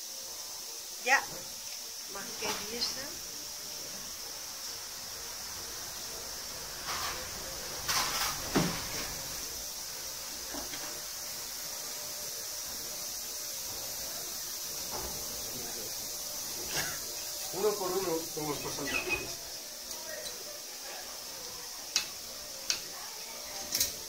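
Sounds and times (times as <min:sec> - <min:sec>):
steady background hiss: 0:00.0 - 0:24.0.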